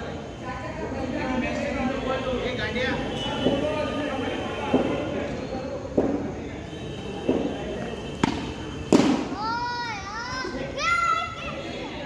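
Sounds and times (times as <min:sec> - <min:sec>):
cricket bat striking ball: 0:07.2 - 0:09.4.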